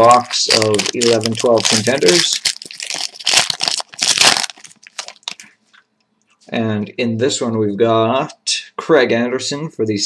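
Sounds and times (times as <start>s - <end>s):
plastic wrapper crinkling: 0.0s - 5.6s.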